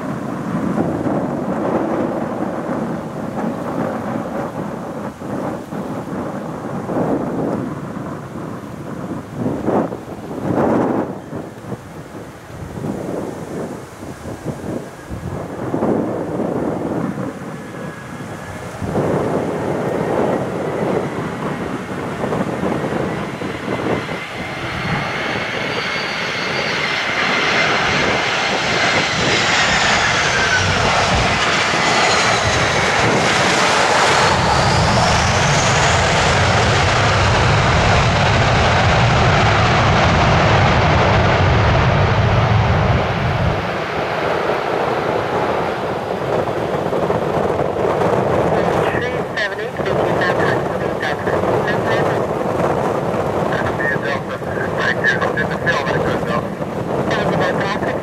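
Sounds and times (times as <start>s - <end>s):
jet engines of landing airliner: 0.0s - 58.0s
jet whine falling in pitch: 16.9s - 43.9s.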